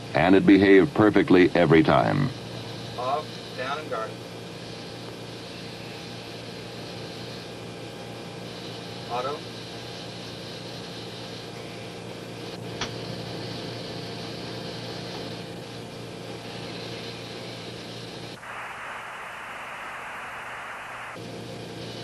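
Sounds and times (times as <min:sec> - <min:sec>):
radio hiss and hum: 0:00.0 - 0:22.0
harsh burst of static: 0:12.4 - 0:22.0.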